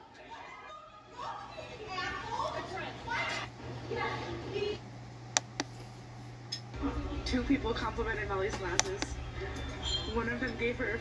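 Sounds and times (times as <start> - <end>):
people talking: 0.2 - 4.8, 6.8 - 11.0
steady low hum: 1.0 - 11.0.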